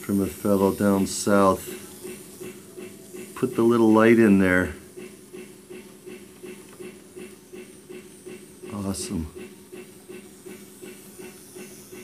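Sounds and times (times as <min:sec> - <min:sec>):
faint repeating train pulses: 0:00.0 - 0:12.0.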